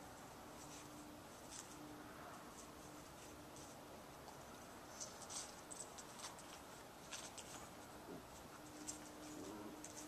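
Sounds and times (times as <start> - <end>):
faint steady hiss: 0.0 - 10.0
soft scratchy rustles: 0.0 - 10.0.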